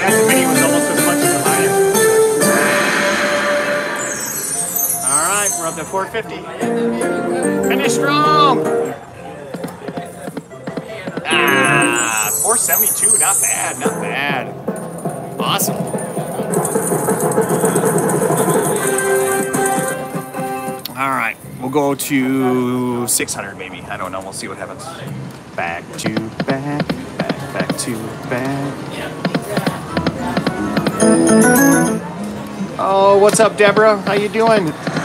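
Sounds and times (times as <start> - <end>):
slot machine game music: 0.0 - 9.0, 11.3 - 14.5, 30.0 - 32.8
jingling coin sounds: 4.1 - 6.1, 11.4 - 14.3.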